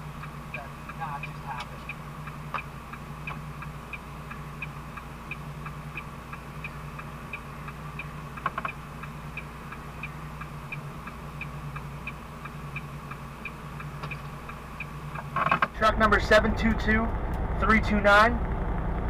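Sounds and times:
truck engine idling: 0:00.0 - 0:19.0.

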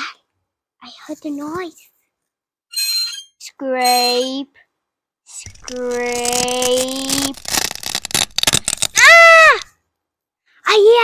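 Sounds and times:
rough scratching strokes: 0:05.5 - 0:09.7.

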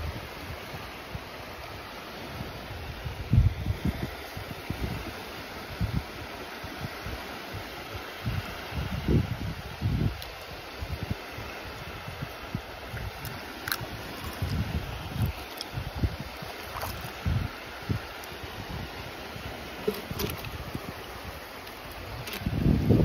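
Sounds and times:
seawater washing at shoreline: 0:00.0 - 0:23.0
wind gusts on microphone: 0:00.0 - 0:23.0.

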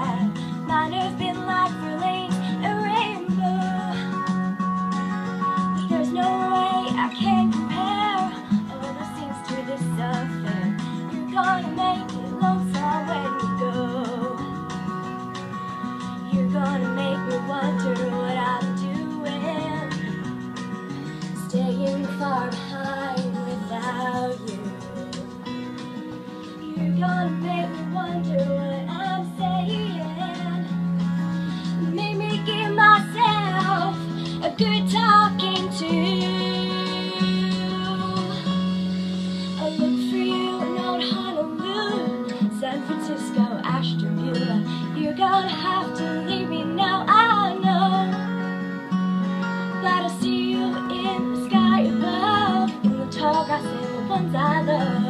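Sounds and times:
acoustic guitar strumming: 0:00.0 - 0:55.0
woman singing country song: 0:00.0 - 0:55.0.

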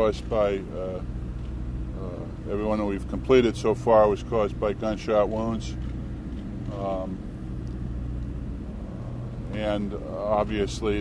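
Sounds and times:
constant hum: 0:00.0 - 0:11.0
low mechanical rumble: 0:00.0 - 0:11.0.

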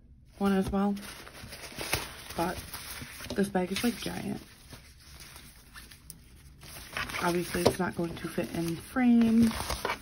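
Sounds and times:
fabric bag rustling: 0:00.4 - 0:10.0.

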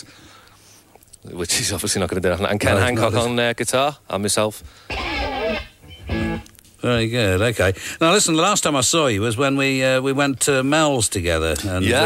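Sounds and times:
guitar chords strummed: 0:04.9 - 0:06.5.

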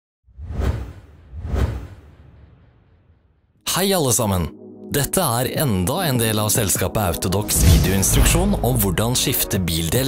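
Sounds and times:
whoosh sound effects: 0:07.5 - 0:09.0.

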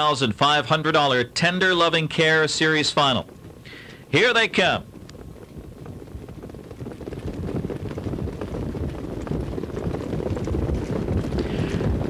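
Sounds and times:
horse hoofbeats: 0:00.0 - 0:12.0
wind on microphone: 0:03.0 - 0:12.0.

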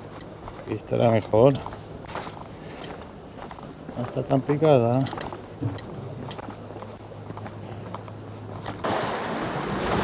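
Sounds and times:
sea: 0:08.3 - 0:10.0.

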